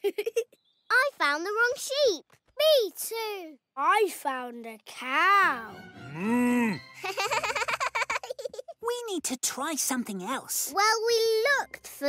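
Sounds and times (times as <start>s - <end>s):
soft background music: 4.9s - 7.8s, 9.2s - 12.0s.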